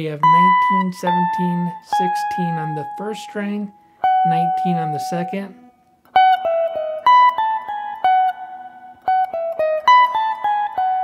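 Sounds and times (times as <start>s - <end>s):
clean electric guitar picking: 0.0s - 11.0s.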